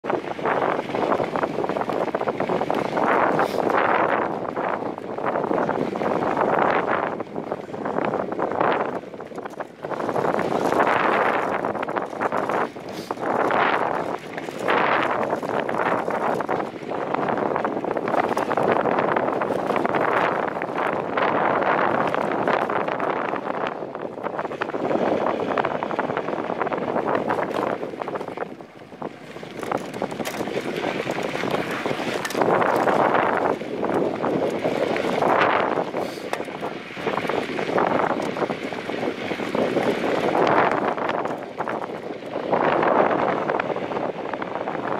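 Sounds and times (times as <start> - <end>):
wind buffeting microphone: 0.0 - 44.9
tyres crackling on gravel: 0.1 - 44.9
bike clicks and rattles: 0.2 - 44.9.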